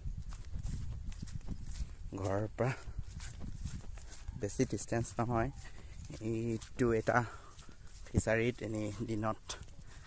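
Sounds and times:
footsteps in grass: 0.0 - 10.0
wind rumble on microphone: 0.0 - 10.0.

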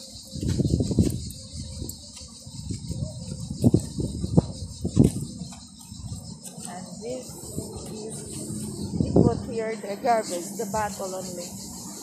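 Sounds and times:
insect buzz: 0.0 - 12.0.

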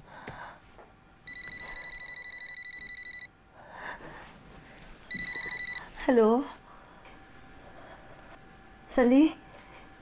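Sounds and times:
mobile phone ringtone trill: 1.3 - 3.3, 5.1 - 5.8.

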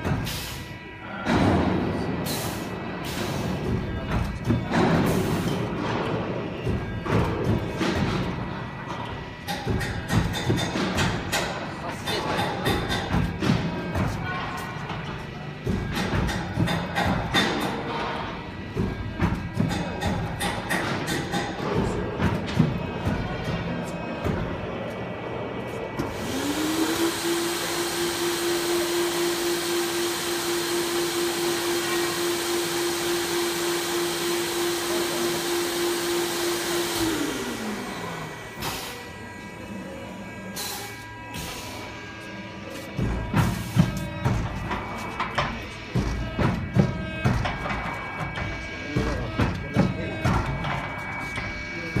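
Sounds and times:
vacuum cleaner motor whine: 26.0 - 42.2.

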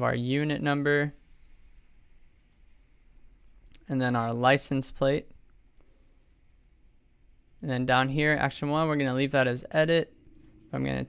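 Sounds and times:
computer mouse clicks: 2.3 - 3.0, 5.5 - 6.8.

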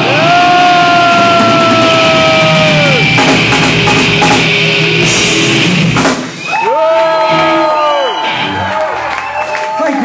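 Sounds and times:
drum and cymbal hits: 0.0 - 6.5
thrash metal band playing live: 0.0 - 6.6
high held guitar note: 2.7 - 6.3.

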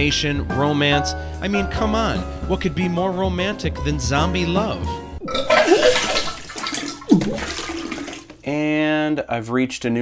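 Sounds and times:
falling water gurgle: 5.2 - 8.4
rushing water: 5.4 - 8.4.

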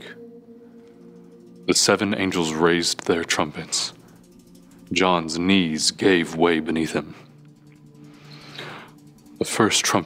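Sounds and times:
soft background music chord: 0.0 - 10.0.

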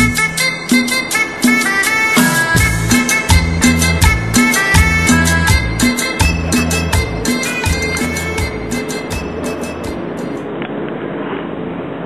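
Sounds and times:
cumbia song with drum beats: 0.0 - 10.4.

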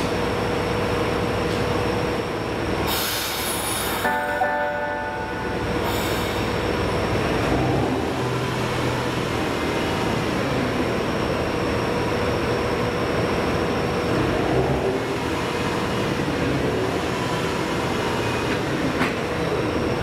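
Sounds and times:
diesel railcar engine idling: 0.0 - 20.0.

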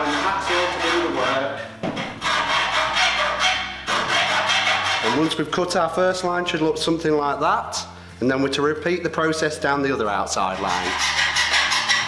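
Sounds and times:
hacksaw cutting sheet metal: 0.0 - 5.6, 10.3 - 12.0.

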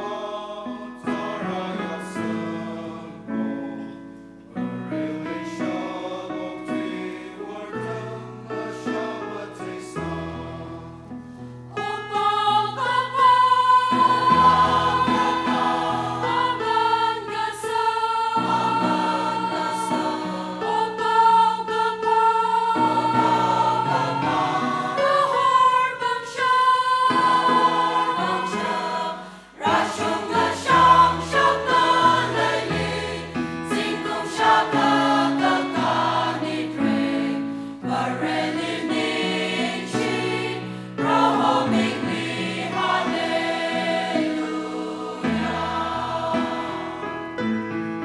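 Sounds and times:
choir singing a hymn: 0.0 - 47.8.

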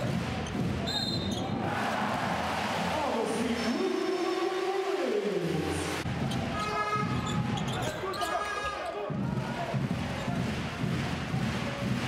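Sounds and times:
arena crowd noise: 0.0 - 12.0
sneakers squeaking: 0.5 - 1.5, 6.3 - 9.0.

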